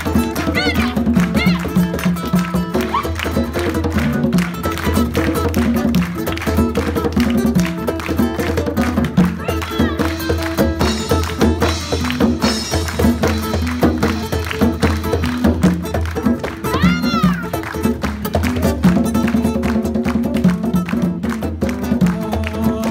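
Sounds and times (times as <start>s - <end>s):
acoustic guitar: 0.0s - 22.9s
drums with cymbals: 9.8s - 16.0s.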